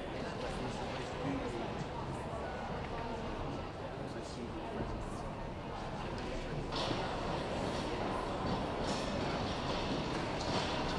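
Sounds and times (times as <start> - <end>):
indistinct crowd noise: 0.0 - 10.9.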